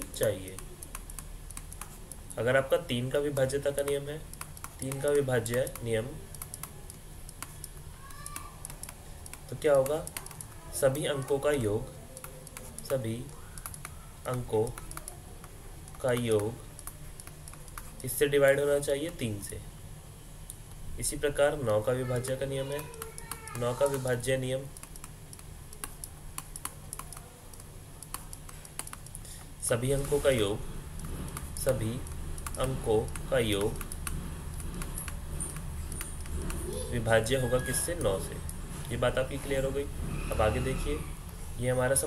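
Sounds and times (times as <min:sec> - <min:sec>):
faint low hum: 0:00.0 - 0:42.0.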